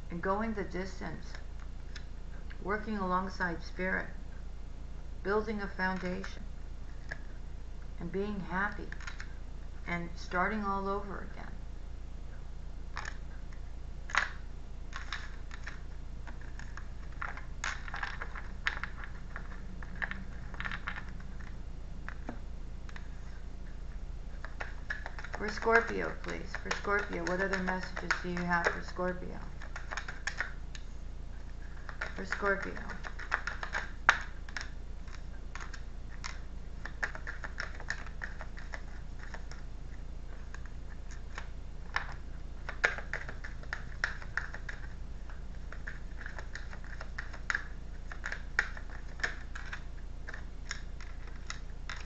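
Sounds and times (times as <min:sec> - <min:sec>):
steady low hum: 0:00.0 - 0:52.0
cards being shuffled: 0:14.1 - 0:52.0.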